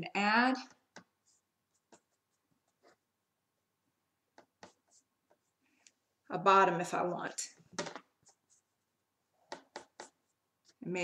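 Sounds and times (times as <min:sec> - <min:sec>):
paintbrush scratching on board: 0:01.2 - 0:03.0, 0:04.4 - 0:05.6, 0:08.2 - 0:08.9.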